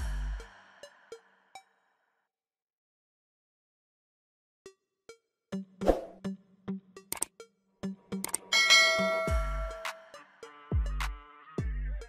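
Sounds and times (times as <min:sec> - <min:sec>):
background music with beat: 0:05.5 - 0:12.0
bright bell chime: 0:08.5 - 0:09.8.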